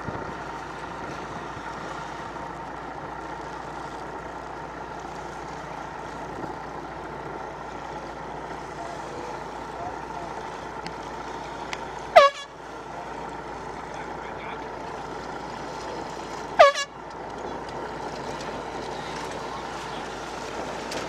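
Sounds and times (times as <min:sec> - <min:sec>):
water noise: 0:00.0 - 0:21.0
wind: 0:00.0 - 0:21.0
air horn blast: 0:12.1 - 0:12.6, 0:16.6 - 0:17.0.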